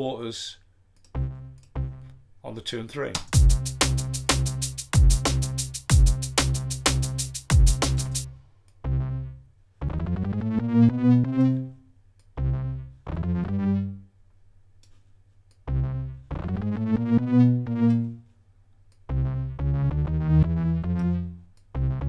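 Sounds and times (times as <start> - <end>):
synthesizer bass notes: 1.1 - 2.1, 3.4 - 11.8, 12.4 - 14.1, 15.7 - 18.2, 19.1 - 22.0.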